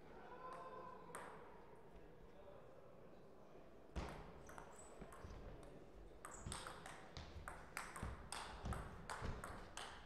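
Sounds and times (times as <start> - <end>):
table tennis ball bouncing: 6.2 - 10.0.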